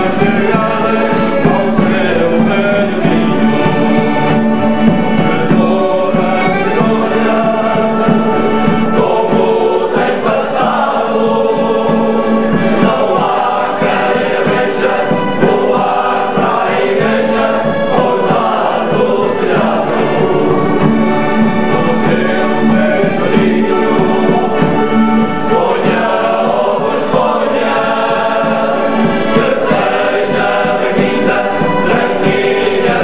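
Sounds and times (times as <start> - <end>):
male choir singing: 0.0 - 33.0
mandolin: 0.0 - 33.0
strummed acoustic guitars: 0.0 - 33.0.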